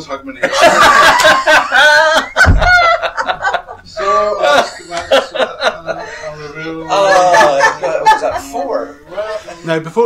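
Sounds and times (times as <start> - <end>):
people exclaiming: 6.4 - 8.8.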